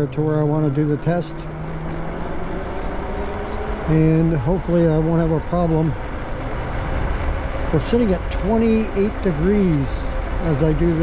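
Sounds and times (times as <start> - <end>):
man's voice: 7.7 - 11.0.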